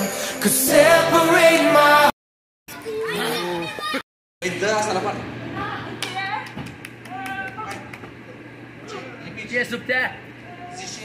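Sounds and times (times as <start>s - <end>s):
sparse hand clapping: 6.0s - 8.1s.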